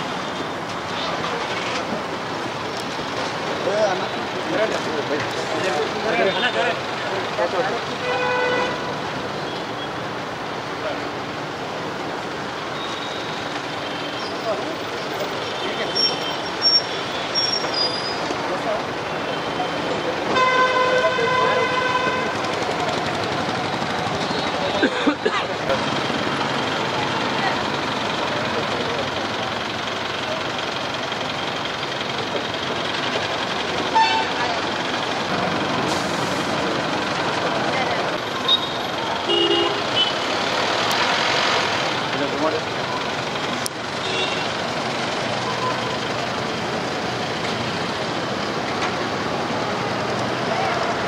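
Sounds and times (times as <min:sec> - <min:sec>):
crowd voices: 0:00.0 - 0:51.0
traffic and engine noise: 0:00.0 - 0:51.0.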